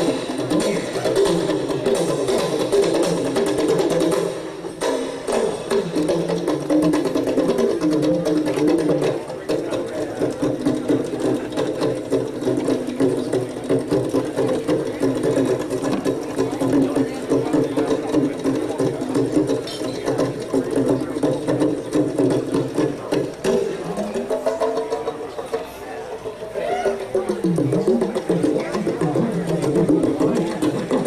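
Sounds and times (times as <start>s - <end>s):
hand drum strokes: 0.0s - 31.0s
plucked upright bass: 27.0s - 31.0s.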